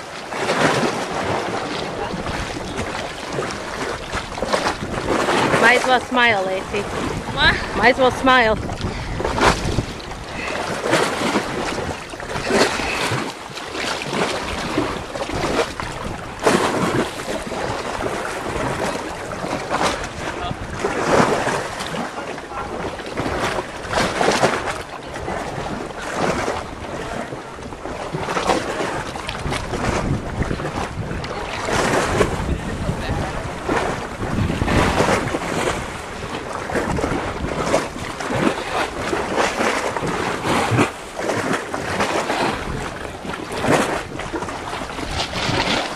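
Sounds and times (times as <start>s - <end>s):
small waves lapping: 0.0s - 45.9s
wind buffeting microphone: 0.0s - 45.9s.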